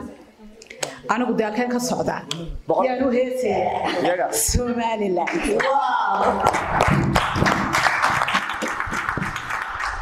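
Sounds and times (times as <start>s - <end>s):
audience applause: 5.6s - 10.0s.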